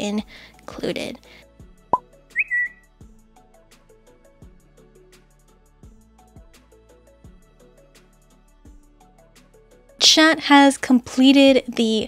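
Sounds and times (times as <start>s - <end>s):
soft background music: 0.0s - 12.0s
whistle-like chirp: 2.4s - 2.9s.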